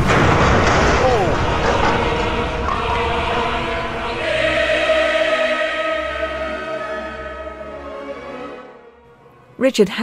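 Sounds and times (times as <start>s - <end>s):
choir singing held chords: 1.5s - 9.1s.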